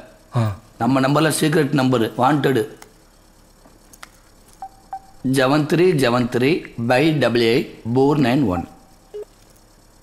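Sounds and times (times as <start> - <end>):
short keypad beeps: 4.6 - 5.2.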